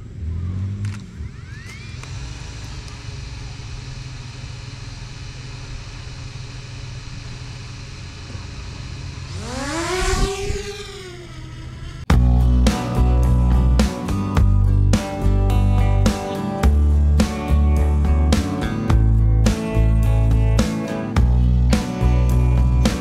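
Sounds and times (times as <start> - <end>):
drone rotors whining: 0.0 - 15.7
steady low hum: 0.0 - 23.0.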